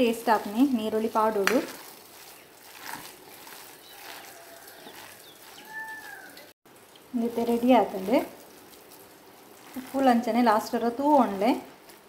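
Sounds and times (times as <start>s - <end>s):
hand mixing coarse batter: 0.0s - 6.6s, 7.2s - 12.0s.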